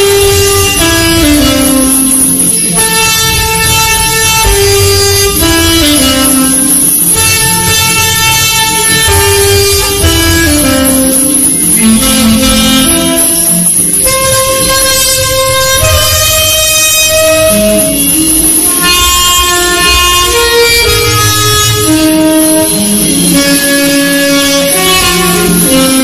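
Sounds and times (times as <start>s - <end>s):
alto saxophone long note: 0.0s - 26.0s
backing track: 0.0s - 26.0s.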